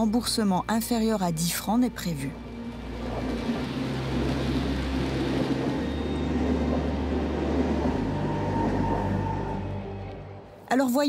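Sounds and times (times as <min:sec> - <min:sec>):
low hum: 0:00.0 - 0:10.7
train rumbling past: 0:02.3 - 0:10.6.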